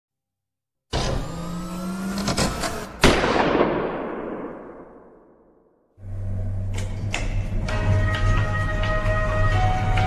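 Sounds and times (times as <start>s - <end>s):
heavy reverberating boom: 3.0s - 5.7s.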